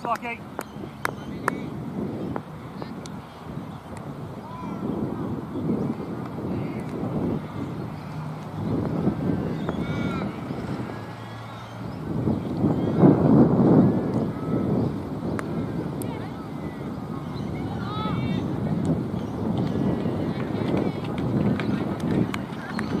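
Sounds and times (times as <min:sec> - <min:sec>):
faint voices: 0:00.0 - 0:23.0
wind buffeting microphone: 0:00.0 - 0:23.0.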